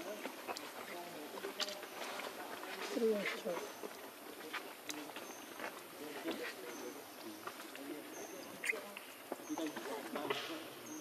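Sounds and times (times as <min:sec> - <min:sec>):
steady outdoor hiss: 0:00.0 - 0:11.0.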